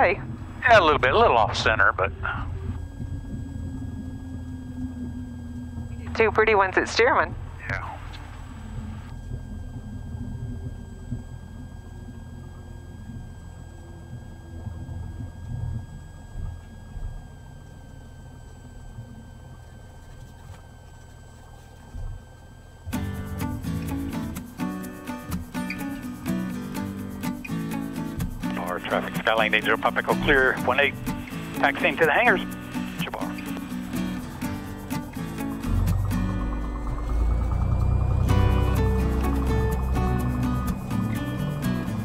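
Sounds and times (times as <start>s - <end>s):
airplane engine idling: 0.0s - 22.0s, 22.6s - 42.0s
faint steady whine: 0.0s - 42.0s
background music: 22.9s - 42.0s.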